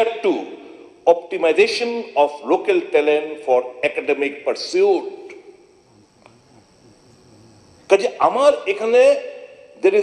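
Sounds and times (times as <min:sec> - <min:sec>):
steady high hiss: 0:00.0 - 0:10.0
man speaking: 0:06.0 - 0:10.0.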